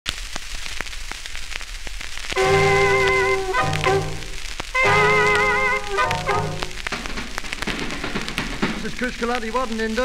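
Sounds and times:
crackling clicks: 0.1s - 10.0s
record surface hiss: 0.1s - 10.0s.

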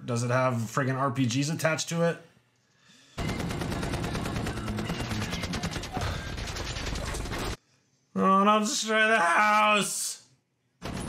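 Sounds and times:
machine-gun fire: 3.2s - 7.6s.

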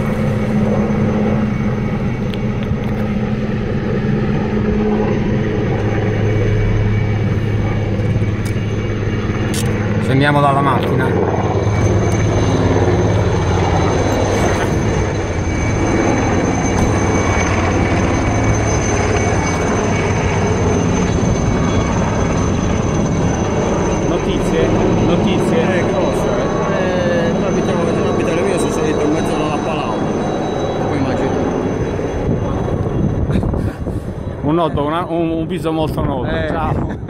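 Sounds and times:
helicopter rotor and engine: 0.0s - 37.0s.

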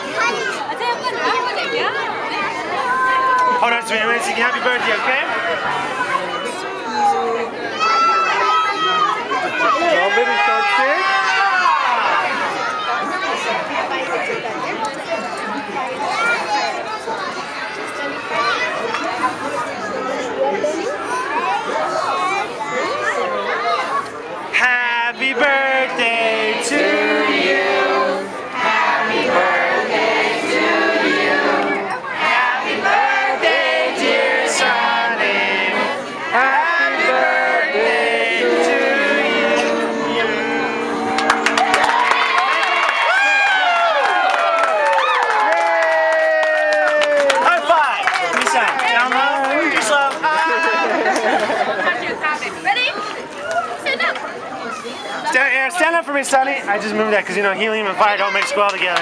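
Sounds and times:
children shouting and whooping: 0.0s - 3.6s, 5.4s - 13.5s, 41.1s - 47.5s
children and adults talking: 0.0s - 43.1s, 46.9s - 59.0s
group cheering: 36.4s - 51.7s
people clapping: 40.9s - 51.7s, 58.3s - 59.0s.

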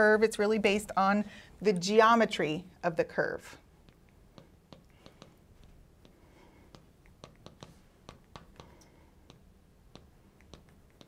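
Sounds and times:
marker writing on glass: 3.8s - 11.0s.

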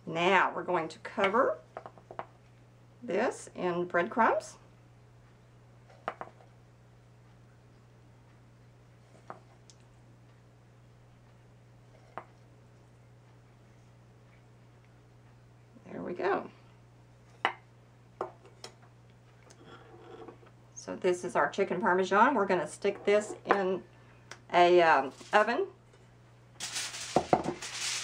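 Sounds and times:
faint low hum: 0.0s - 27.8s.

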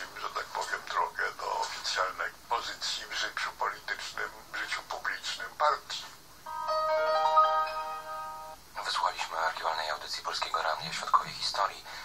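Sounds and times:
electronic chime chord: 6.5s - 8.6s.

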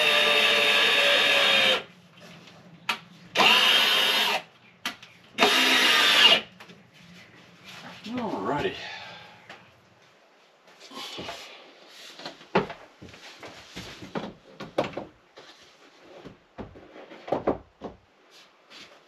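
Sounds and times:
cordless drill running: 0.0s - 1.8s, 3.4s - 4.4s, 5.4s - 6.5s.

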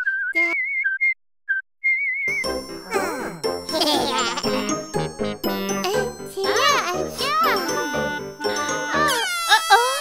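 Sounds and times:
high whistled notes: 0.0s - 2.6s
cartoon music with chimes: 2.3s - 9.3s.

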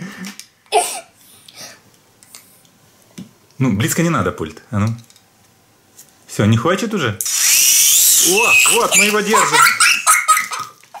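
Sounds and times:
child laughing: 8.4s - 11.0s.

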